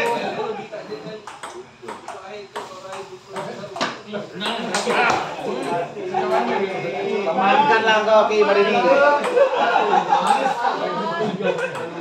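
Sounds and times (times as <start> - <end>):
ping-pong ball clicks: 1.2 - 5.8.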